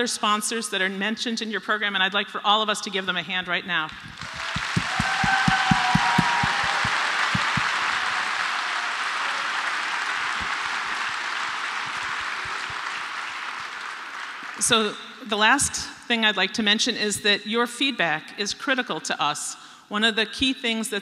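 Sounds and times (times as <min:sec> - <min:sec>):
audience applauding: 0:04.0 - 0:14.6.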